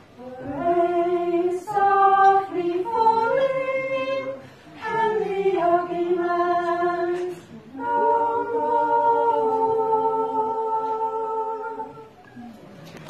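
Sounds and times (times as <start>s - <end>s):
women's choir singing in harmony: 0.0s - 12.2s.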